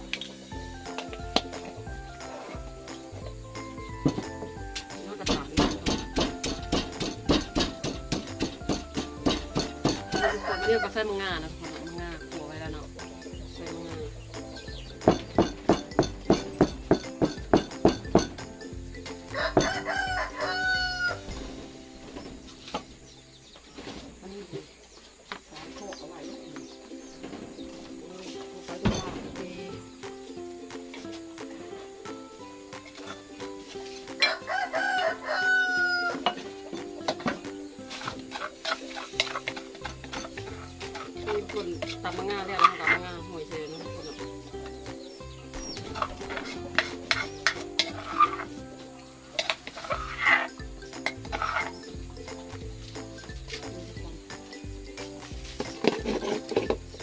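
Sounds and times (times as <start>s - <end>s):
background music: 0.0s - 24.6s, 25.5s - 57.0s
pestle pounding in a mortar: 5.2s - 10.4s, 14.4s - 19.9s, 37.3s - 43.0s
rooster crowing: 9.8s - 11.0s, 19.3s - 21.3s, 34.2s - 36.4s
utensil scraping metal pot: 37.9s - 43.2s, 45.8s - 48.6s, 55.5s - 57.0s.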